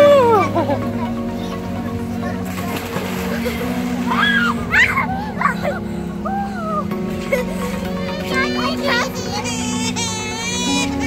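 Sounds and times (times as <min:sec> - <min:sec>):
background music with held tones: 0:00.0 - 0:11.0
water sloshing in pool: 0:02.2 - 0:05.8
children calling out: 0:03.2 - 0:11.0.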